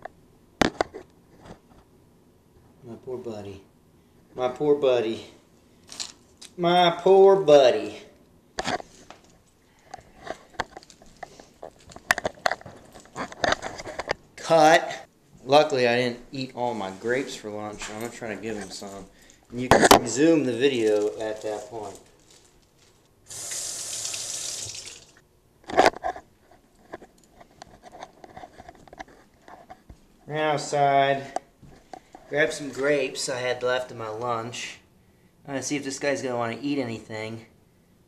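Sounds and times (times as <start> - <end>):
handling sounds: 5.8 - 6.5, 8.6 - 14.3, 16.9 - 23.2
water running from a tap: 23.3 - 25.2.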